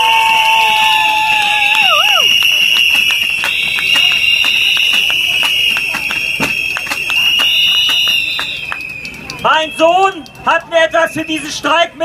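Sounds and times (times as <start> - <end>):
crowd blowing shrill whistles: 0.0 - 11.7
scattered clapping: 0.1 - 11.6.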